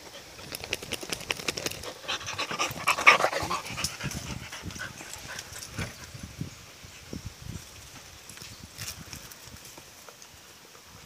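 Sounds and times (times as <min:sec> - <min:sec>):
dogs panting: 0:00.0 - 0:06.2.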